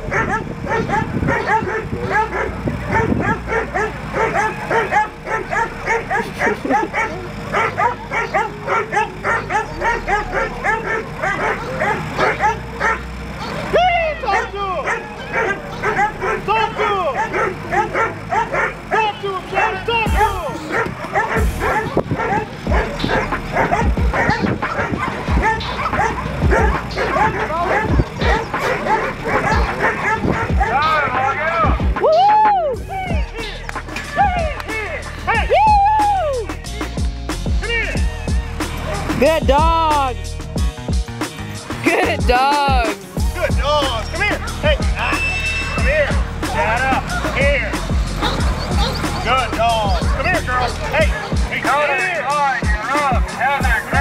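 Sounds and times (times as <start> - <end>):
dogs barking rapidly: 0.0 - 54.0.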